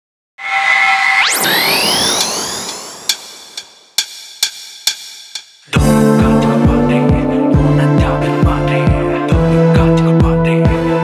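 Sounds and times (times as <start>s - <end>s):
upward pitch sweep: 0.4s - 3.7s, 5.8s - 8.4s
sharp beat hits: 1.4s - 9.0s
electronic held chord: 5.8s - 8.6s.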